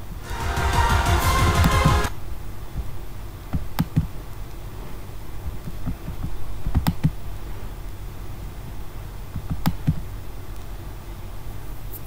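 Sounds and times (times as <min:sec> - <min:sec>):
low electrical hum: 0:00.0 - 0:00.6, 0:02.1 - 0:12.0.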